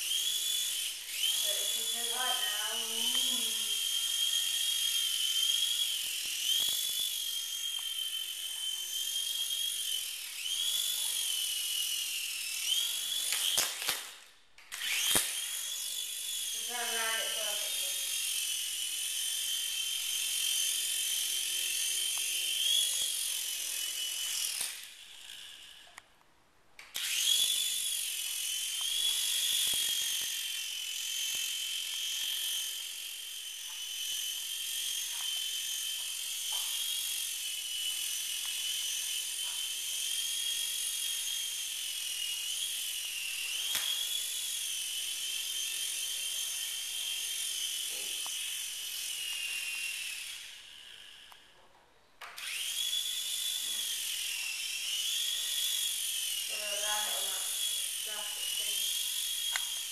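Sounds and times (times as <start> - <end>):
rc helicopter rotor whine: 0.0 - 26.0, 26.9 - 51.6, 52.2 - 59.9.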